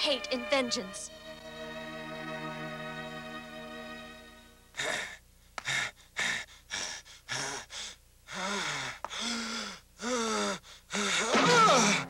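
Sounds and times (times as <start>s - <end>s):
man gasping: 4.8s - 12.0s.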